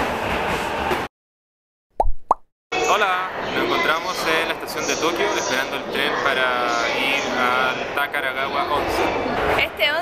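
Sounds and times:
upward bloop: 0:02.0 - 0:02.4
cartoon pop sound effects: 0:02.0 - 0:02.5.

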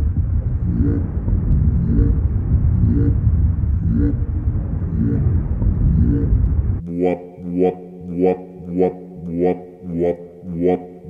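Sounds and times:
loud low rumble: 0:00.0 - 0:11.0.

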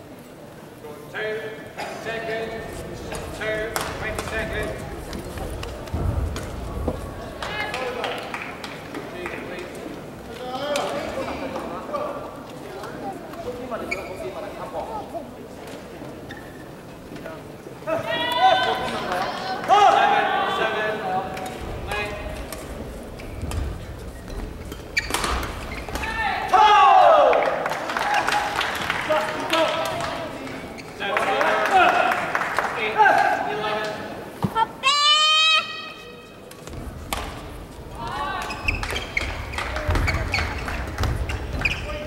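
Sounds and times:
voices echoing in sports hall: 0:00.0 - 0:42.0
players shouting: 0:25.9 - 0:29.8.

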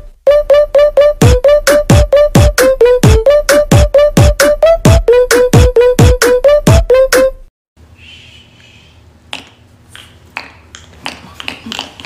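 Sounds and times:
person shushing: 0:07.9 - 0:09.0.

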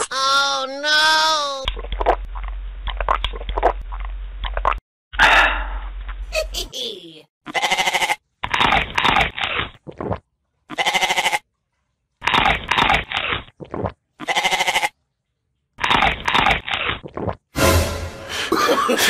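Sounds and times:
goat-like bleating: 0:07.5 - 0:08.2, 0:10.7 - 0:11.4, 0:14.2 - 0:15.0.

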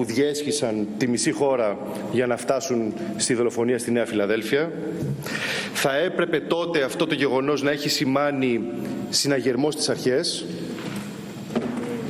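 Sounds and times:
man speaking into a microphone: 0:00.0 - 0:05.0, 0:05.8 - 0:10.7.

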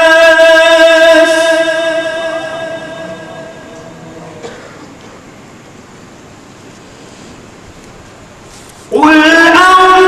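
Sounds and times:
person reciting melodically: 0:00.0 - 0:04.4, 0:08.8 - 0:10.0
background hiss: 0:00.0 - 0:10.0.

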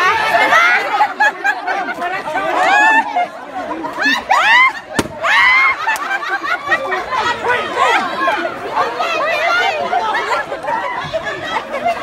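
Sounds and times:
people chattering excitedly: 0:00.0 - 0:12.0.

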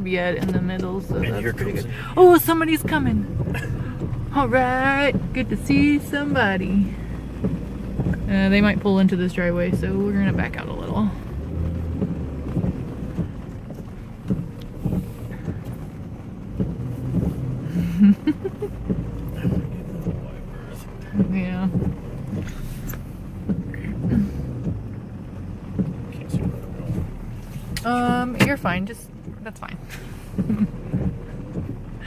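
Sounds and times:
truck engine running low: 0:00.0 - 0:32.0
person laughing: 0:17.8 - 0:18.8.

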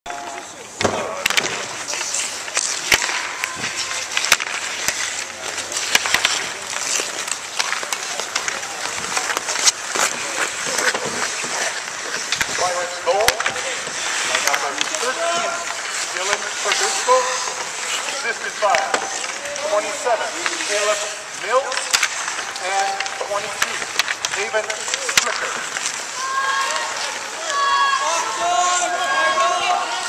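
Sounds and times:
hockey sticks clacking: 0:00.1 - 0:30.0
skates scraping on ice: 0:00.1 - 0:30.0
people calling out: 0:26.0 - 0:30.0.

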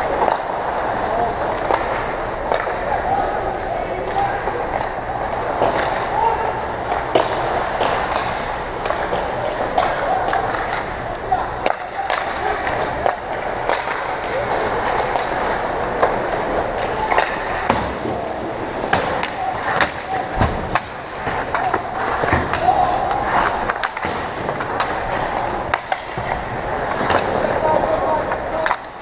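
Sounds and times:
hockey sticks and puck clacking: 0:00.0 - 0:29.0
distant shouting voices: 0:02.6 - 0:07.9, 0:08.6 - 0:23.8
skate blades scraping ice: 0:04.2 - 0:29.0.

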